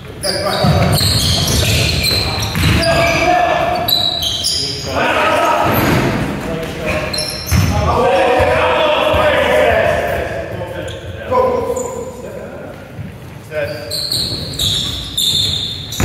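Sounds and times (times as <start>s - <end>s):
basketball bouncing on wooden floor: 0.6s - 3.0s
players shouting: 2.0s - 4.2s, 7.7s - 10.3s.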